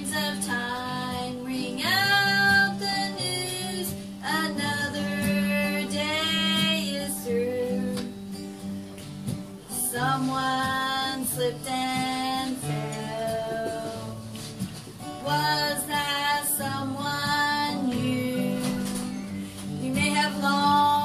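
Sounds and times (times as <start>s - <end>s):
woman singing: 0.0s - 8.5s, 9.6s - 21.0s
acoustic guitar: 0.0s - 21.0s.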